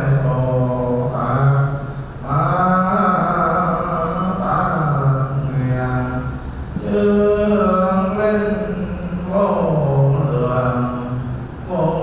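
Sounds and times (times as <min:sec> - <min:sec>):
amplified leading voice chanting: 0:00.0 - 0:12.0
men chanting in low voices: 0:00.0 - 0:12.0.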